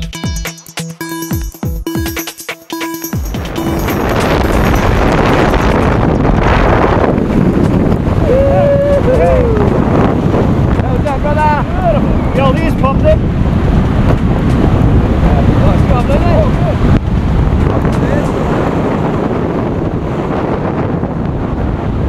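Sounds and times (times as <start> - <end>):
wind rushing over microphone: 3.2 - 22.0.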